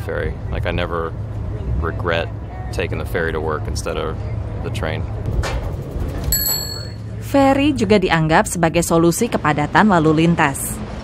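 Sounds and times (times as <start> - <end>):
bell ding: 6.3 - 7.2.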